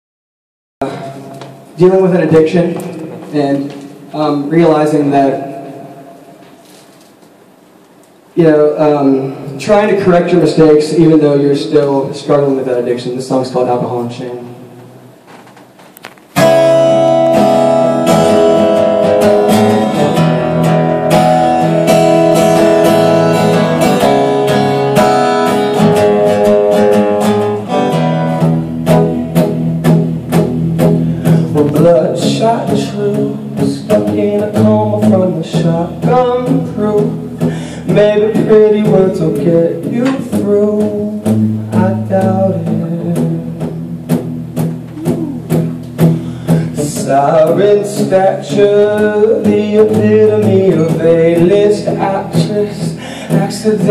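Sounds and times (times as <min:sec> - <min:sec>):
acoustic guitar strumming: 0:16.1 - 0:53.9.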